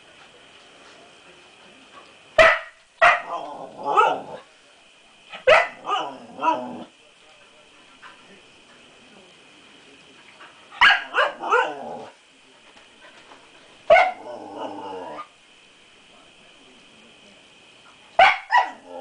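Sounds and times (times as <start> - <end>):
puppy barking: 2.4 - 4.2, 5.4 - 6.1, 10.8 - 11.8, 13.9 - 14.2, 18.2 - 18.8.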